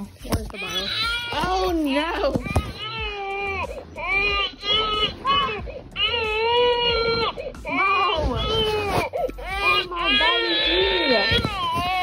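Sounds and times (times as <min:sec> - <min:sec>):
recorded baby crying: 0:00.5 - 0:12.0.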